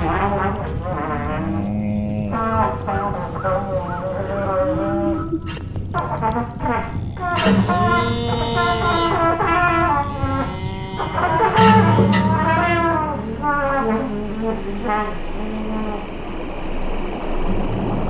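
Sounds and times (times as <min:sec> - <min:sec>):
trumpet playing wavering lines: 0:00.0 - 0:01.7, 0:02.4 - 0:16.5
sustained low notes: 0:00.0 - 0:18.0
sharp percussive hits: 0:05.5 - 0:05.9, 0:07.4 - 0:09.7, 0:11.1 - 0:14.3.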